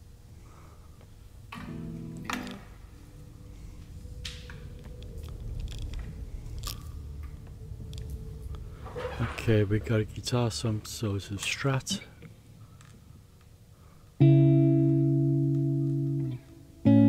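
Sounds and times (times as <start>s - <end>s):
low rumble: 2.7s - 13.3s
crunching clicks: 4.1s - 8.6s.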